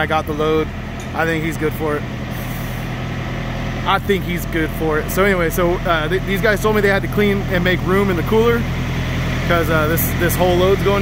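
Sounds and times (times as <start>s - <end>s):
idling trucks diesel drone: 0.0s - 11.0s
refrigeration units humming: 0.0s - 11.0s.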